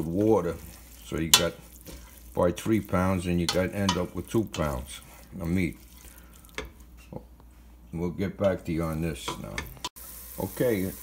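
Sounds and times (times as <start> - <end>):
meat sizzling in a pot: 0.0 - 7.0, 8.8 - 11.0
wooden spoon scraping a pot: 0.0 - 7.8.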